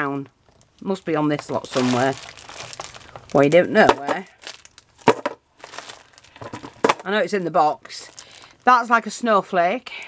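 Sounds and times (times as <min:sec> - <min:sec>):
sharp plastic crackle: 0:00.4 - 0:08.8
plastic bags crinkling: 0:00.4 - 0:09.2.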